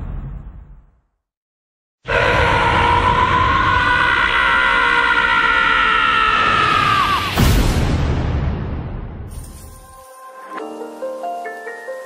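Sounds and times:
man screaming: 2.1s - 7.4s.

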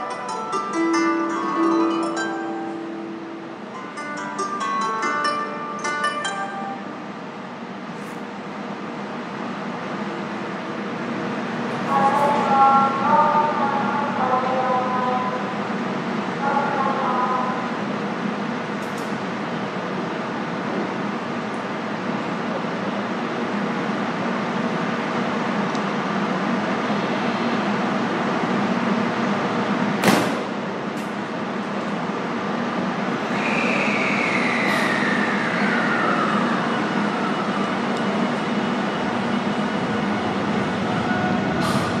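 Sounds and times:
train running gear rumble: 17.7s - 33.3s, 34.4s - 42.0s.

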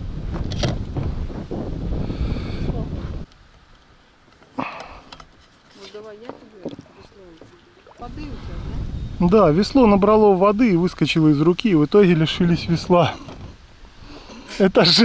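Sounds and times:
wind buffeting microphone: 0.0s - 3.3s, 6.4s - 14.8s.

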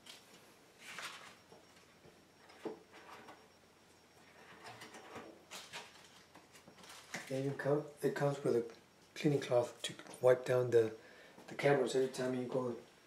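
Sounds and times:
items rustling in hard case: 4.5s - 7.3s.

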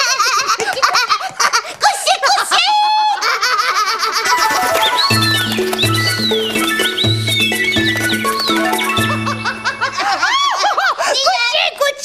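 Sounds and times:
women giggling: 9.0s - 11.2s.

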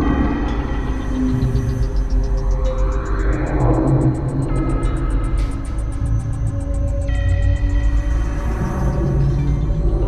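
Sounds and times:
low bass drone: 0.0s - 10.0s.

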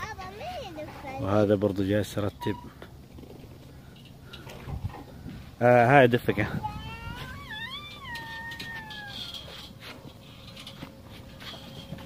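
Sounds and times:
chain swing squeaking: 2.0s - 5.2s, 6.3s - 12.0s.

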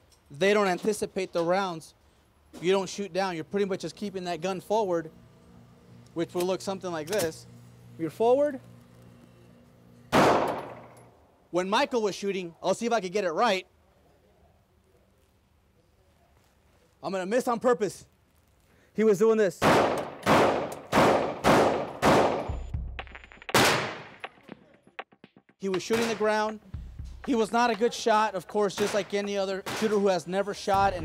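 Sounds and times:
pistol shot echoing indoors: 10.1s - 11.0s, 19.6s - 22.6s, 23.5s - 24.3s.

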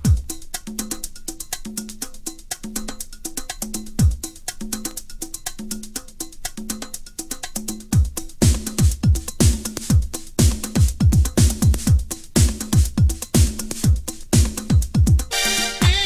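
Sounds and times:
hi-hat ticks: 0.0s - 16.0s.

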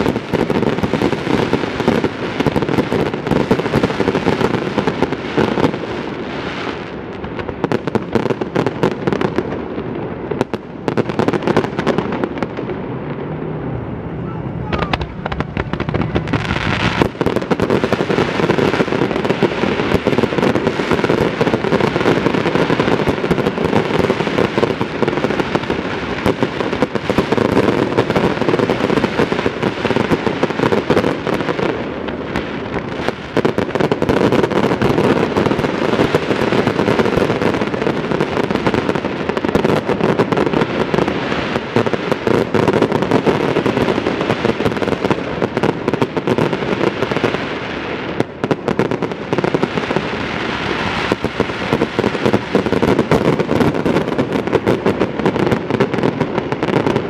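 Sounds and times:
fireworks bursting and crackling: 0.0s - 57.0s.

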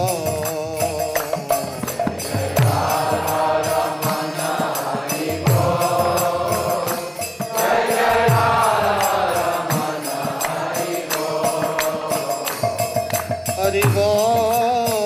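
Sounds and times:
devotional chanting into microphone: 0.0s - 15.0s
rhythmic percussion: 0.0s - 15.0s.

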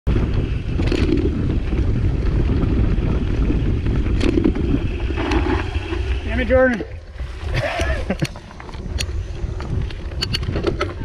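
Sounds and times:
bike rattling: 0.1s - 11.0s
bike tyres rumbling on dirt: 0.1s - 11.0s
wind on microphone: 0.1s - 11.0s.

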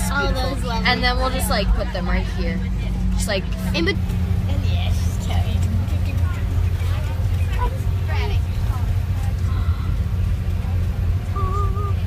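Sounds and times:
passengers chattering: 0.0s - 12.0s
road rumble inside vehicle: 0.0s - 12.0s.

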